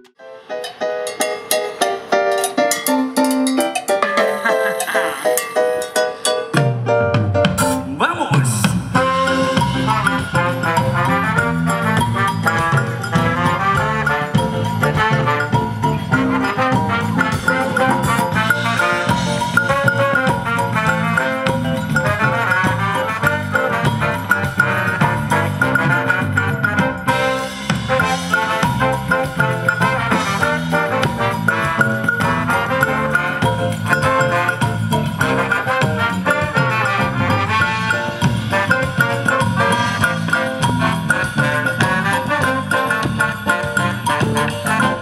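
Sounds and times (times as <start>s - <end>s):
congas: 0.0s - 45.0s
drum kit: 0.0s - 45.0s
electric guitar: 8.8s - 45.0s
horn section playing: 8.9s - 45.0s.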